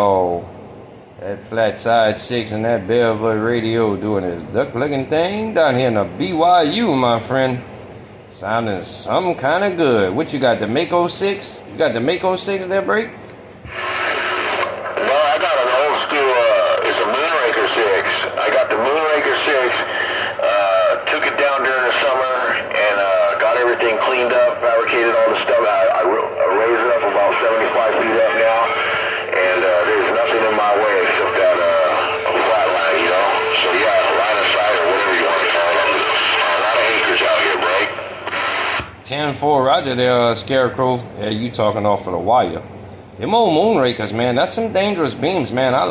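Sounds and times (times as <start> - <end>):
radio band noise: 8.4 - 39.8
person talking over radio: 14.6 - 38.4.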